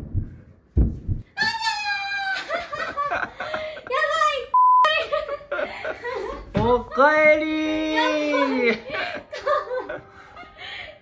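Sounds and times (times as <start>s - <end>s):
low thumps: 0.0s - 1.4s
censor bleep: 4.6s - 4.9s
high-pitched voice exclaiming and laughing: 6.8s - 8.9s.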